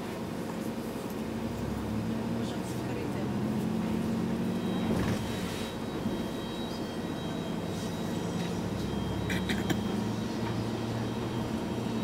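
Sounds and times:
bus engine humming: 0:00.0 - 0:12.0.

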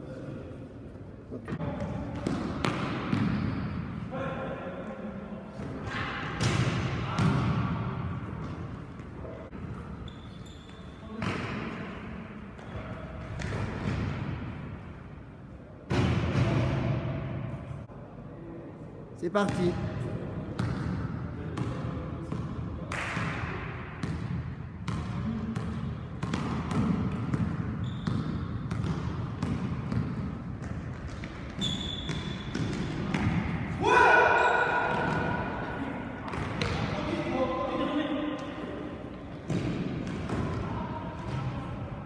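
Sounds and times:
basketball bouncing on gym floor: 0:01.5 - 0:03.8, 0:06.4 - 0:07.8, 0:24.0 - 0:33.7, 0:36.3 - 0:36.9, 0:39.4 - 0:41.5
shoe squeaks: 0:09.9 - 0:11.1, 0:27.8 - 0:28.2, 0:31.4 - 0:32.6
players' voices: 0:32.6 - 0:42.0
sharp pitched squeal or shout: 0:33.8 - 0:34.9.

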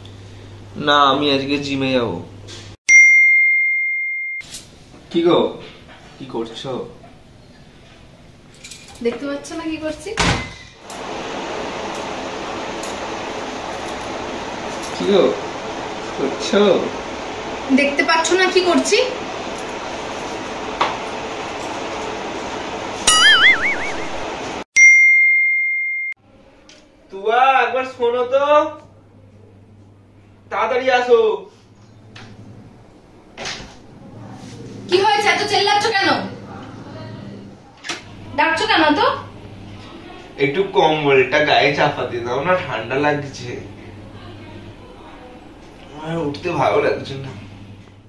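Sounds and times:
bell-like ding: 0:02.9 - 0:04.4, 0:23.1 - 0:23.8, 0:24.8 - 0:26.1.

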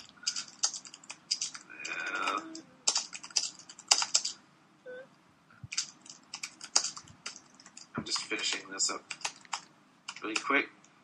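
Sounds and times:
computer keyboard typing: 0:00.0 - 0:04.4, 0:05.7 - 0:10.6.

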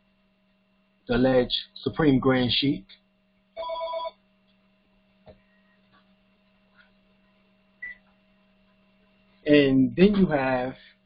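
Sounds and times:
faint steady hum: 0:00.0 - 0:11.0
electronic ringing tone: 0:03.6 - 0:04.2.

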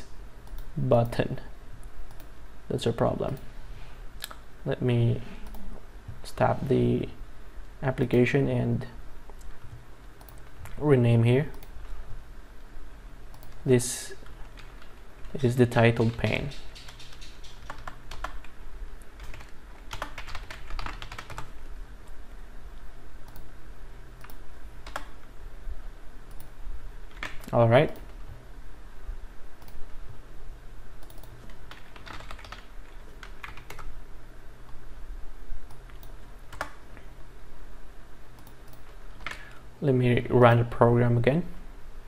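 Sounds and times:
low steady hum: 0:00.0 - 0:42.0
man speaking: 0:02.7 - 0:03.4, 0:04.6 - 0:05.4, 0:06.2 - 0:07.2, 0:07.8 - 0:09.0, 0:10.8 - 0:11.6, 0:13.6 - 0:14.2, 0:15.3 - 0:16.7, 0:27.5 - 0:28.0, 0:39.8 - 0:41.6
computer keyboard typing: 0:14.4 - 0:18.5, 0:19.2 - 0:21.5, 0:24.2 - 0:25.2, 0:31.0 - 0:33.9, 0:35.7 - 0:36.8
computer keyboard key clicks: 0:16.2 - 0:18.5.

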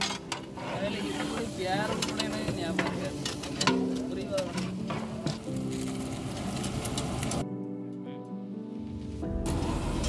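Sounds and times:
paddle scraping and squelching in pot: 0:00.0 - 0:05.5.

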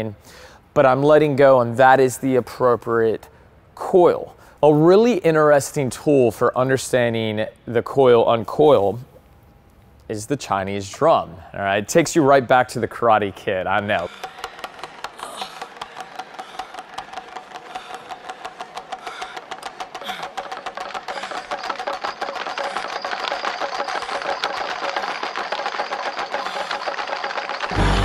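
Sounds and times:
pellet drums rattling: 0:12.9 - 0:28.0.

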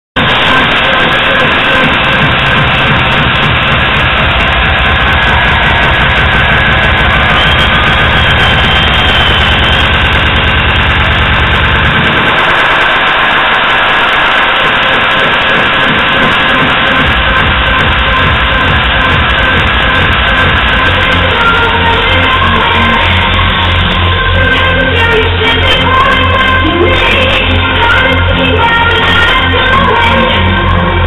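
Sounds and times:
electronic dance music: 0:00.0 - 0:31.0
heavy pulsing bass: 0:00.2 - 0:31.0.

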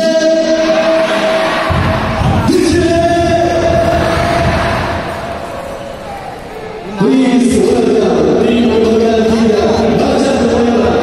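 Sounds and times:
stadium crowd rumble: 0:00.0 - 0:11.0.

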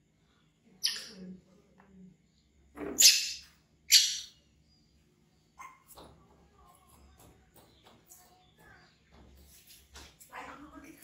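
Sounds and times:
baby monkey screaming: 0:00.8 - 0:01.2, 0:03.0 - 0:04.3.

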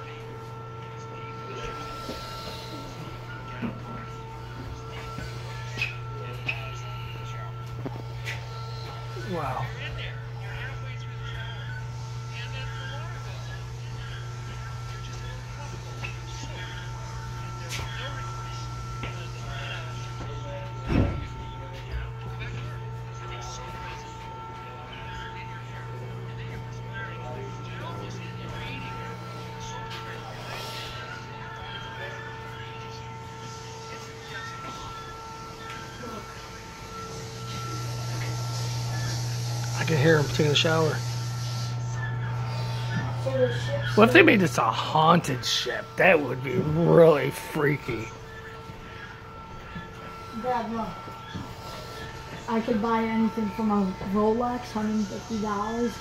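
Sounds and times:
faint indistinct voices: 0:00.0 - 0:56.0
faint steady tones: 0:00.0 - 0:56.0
steady low hum: 0:00.0 - 0:56.0.

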